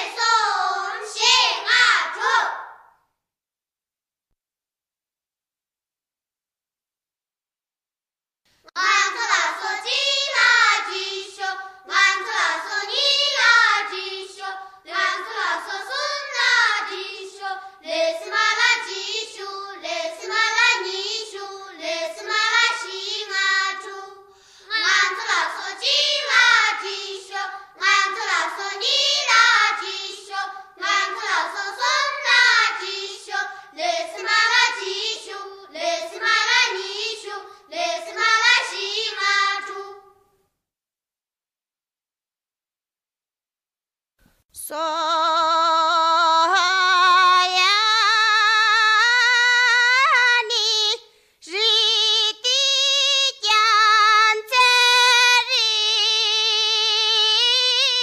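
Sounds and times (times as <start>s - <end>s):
person singing unaccompanied: 44.6s - 58.0s.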